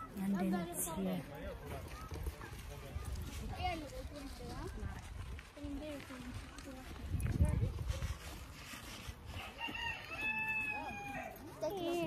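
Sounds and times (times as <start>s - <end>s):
rooster crowing: 9.4s - 11.4s.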